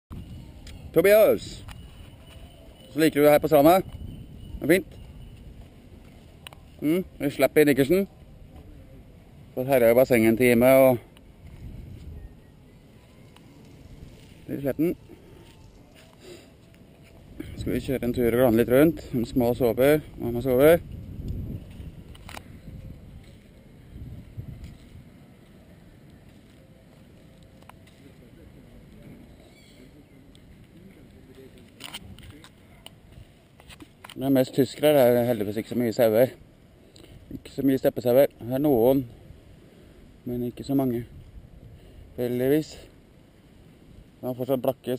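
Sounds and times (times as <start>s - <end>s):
low outdoor murmur: 0.1s - 44.9s
faint background voices: 8.1s - 9.5s, 12.0s - 17.9s, 25.5s - 34.0s
low rumble of carried camera: 20.0s - 33.4s.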